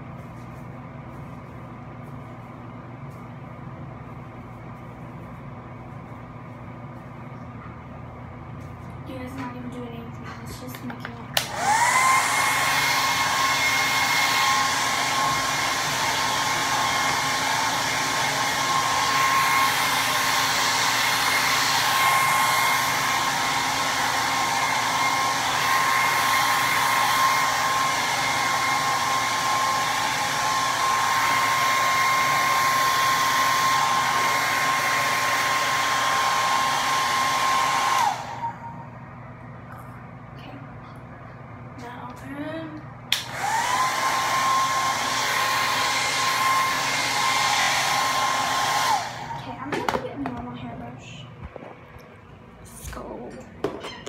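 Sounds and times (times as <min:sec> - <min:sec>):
hair dryer running: 0:08.2 - 0:39.6, 0:41.6 - 0:52.1.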